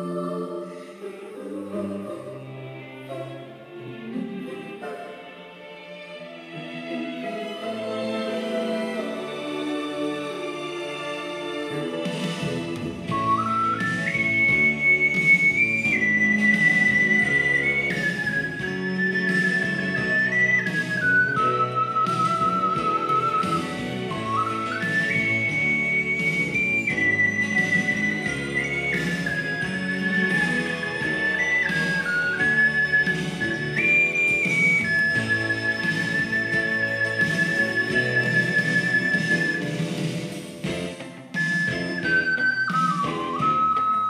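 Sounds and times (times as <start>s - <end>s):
backing accompaniment: 4.6s - 44.0s
ocarina melody: 13.0s - 40.0s, 41.3s - 44.0s.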